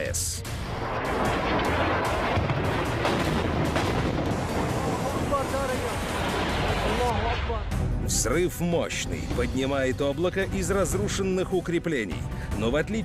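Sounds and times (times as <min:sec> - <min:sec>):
bomb explosion rumble and roar: 0:00.6 - 0:07.4.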